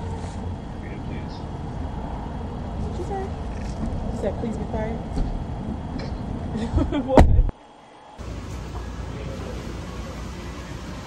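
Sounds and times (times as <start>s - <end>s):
distant voices: 0.0s - 6.9s, 7.5s - 11.0s
low rumble of parking lot: 0.0s - 11.0s.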